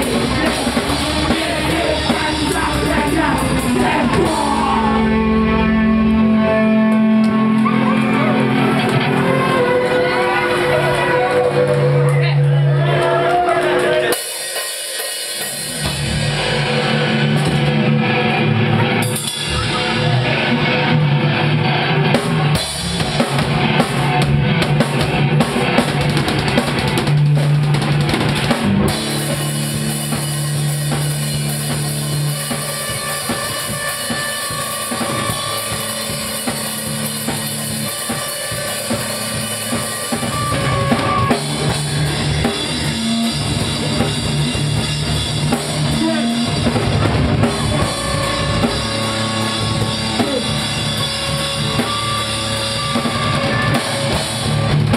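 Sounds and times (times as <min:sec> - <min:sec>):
drum kit pounding: 0:00.0 - 0:54.9
live band playing loud: 0:00.0 - 0:54.9.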